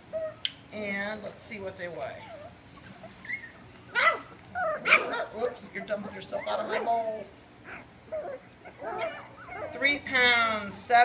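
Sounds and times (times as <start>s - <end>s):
puppies yipping and whining: 0.0s - 0.4s, 2.1s - 10.0s.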